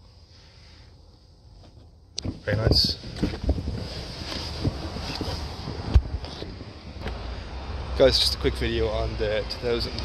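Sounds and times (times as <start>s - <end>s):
wind on microphone: 2.6s - 7.0s.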